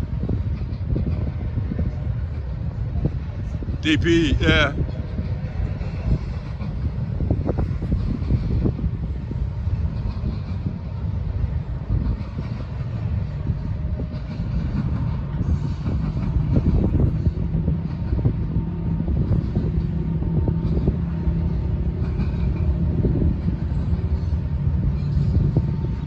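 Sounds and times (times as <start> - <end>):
freight train wheels rumbling: 0.0 - 26.0.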